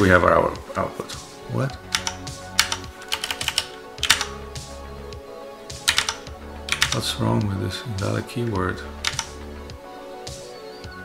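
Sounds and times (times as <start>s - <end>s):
computer keyboard keystrokes: 1.8s - 4.3s, 5.8s - 7.0s, 9.0s - 9.3s.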